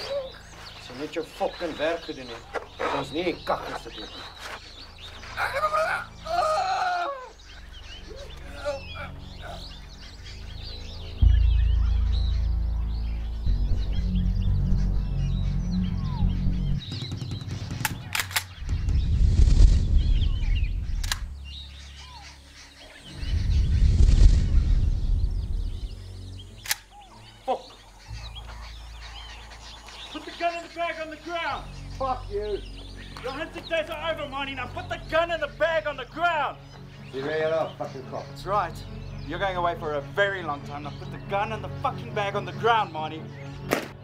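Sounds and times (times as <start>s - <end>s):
birdsong: 0.0s - 44.0s
low sustained film score: 0.0s - 44.0s
sharp clicks: 16.9s - 19.0s, 21.0s - 21.4s, 26.6s - 27.0s.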